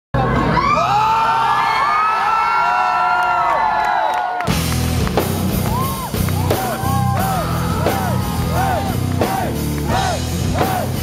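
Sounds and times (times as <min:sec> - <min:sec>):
concert crowd cheering and whooping: 0:00.2 - 0:11.0
rock band playing loudly: 0:04.4 - 0:11.0.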